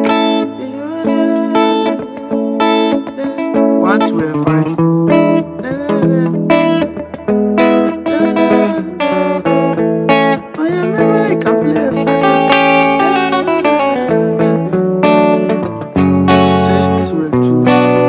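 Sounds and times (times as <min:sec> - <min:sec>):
electric guitar melody: 0:00.0 - 0:18.0.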